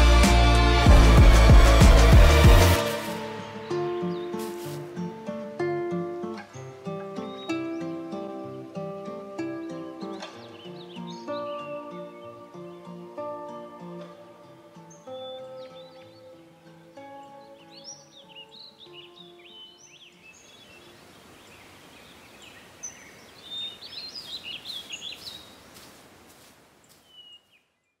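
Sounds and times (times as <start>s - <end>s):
soft music with held notes: 0.0s - 21.0s
outdoor hiss: 0.0s - 27.7s
birds chirping and singing: 0.8s - 25.9s, 26.9s - 28.0s.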